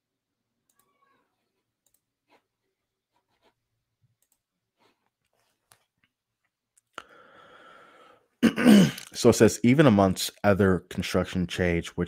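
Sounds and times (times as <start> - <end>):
click: 0.7 - 0.9, 1.8 - 2.0, 4.2 - 4.4
man clearing throat: 8.4 - 9.1.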